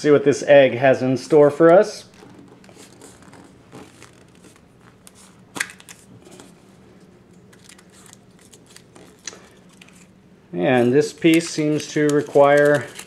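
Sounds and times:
paper crinkling: 2.1 - 6.6, 7.5 - 10.1, 10.8 - 13.0.

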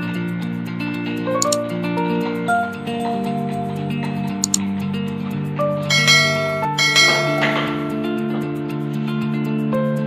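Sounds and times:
background music: 0.0 - 10.0
bell-like chime: 5.9 - 8.3.

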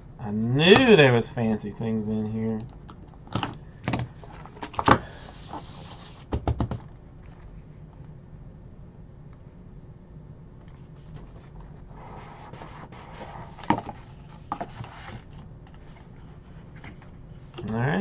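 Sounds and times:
cardboard rubbing and scraping: 4.1 - 6.4, 10.9 - 16.8.

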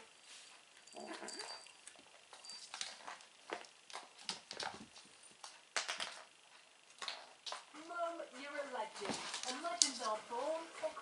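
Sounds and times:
kittens mewing: 0.9 - 1.7.

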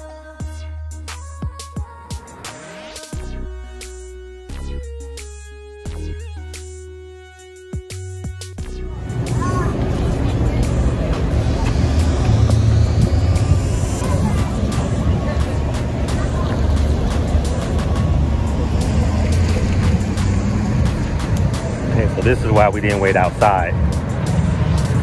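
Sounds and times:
electronic music: 0.0 - 25.0
city traffic rumble: 7.9 - 25.0.

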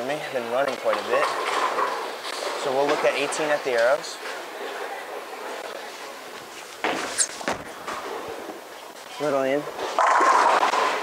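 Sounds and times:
bowling ball rolling: 0.8 - 3.4, 9.6 - 11.0.

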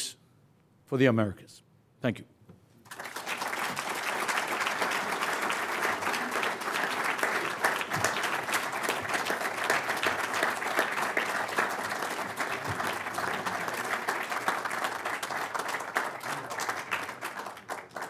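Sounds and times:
audience applauding: 2.8 - 18.0.

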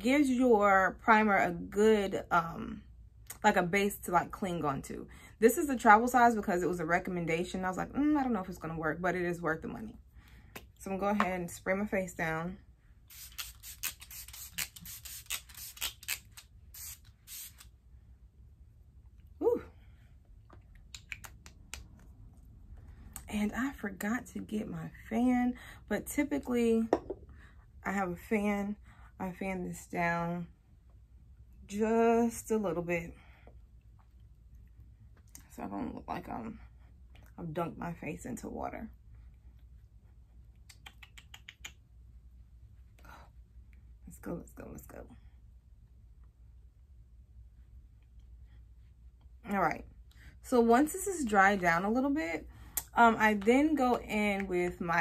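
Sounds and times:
low room hum: 0.0 - 55.0
pump bottle spraying: 13.1 - 17.6.

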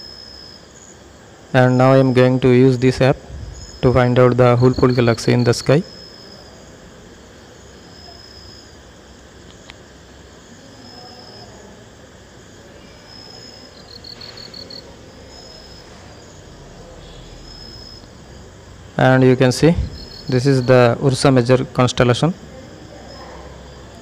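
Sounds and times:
crickets chirping: 0.0 - 24.0
low steady hiss: 0.0 - 24.0.

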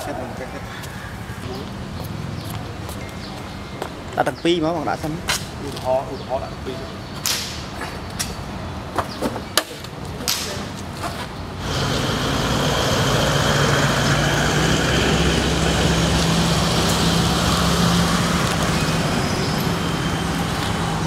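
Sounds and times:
vehicle engine running: 11.6 - 21.0.

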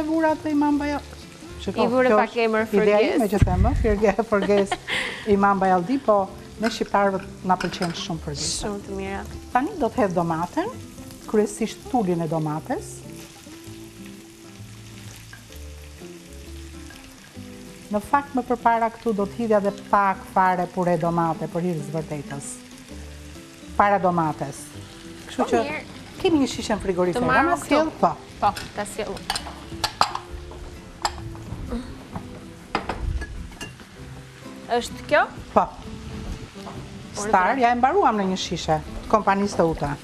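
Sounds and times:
food sizzling in a frying pan: 0.0 - 40.0
soft background music: 0.0 - 40.0.

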